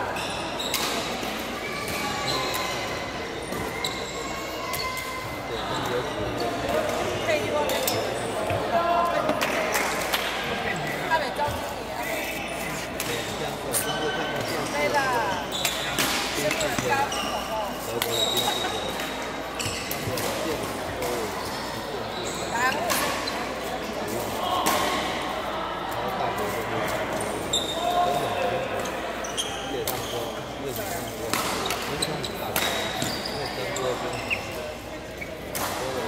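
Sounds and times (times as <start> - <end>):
shoes squeaking on court floor: 0.0 - 9.9, 10.7 - 24.9, 26.4 - 36.0
background chatter: 0.0 - 36.0
murmur of voices: 0.0 - 36.0.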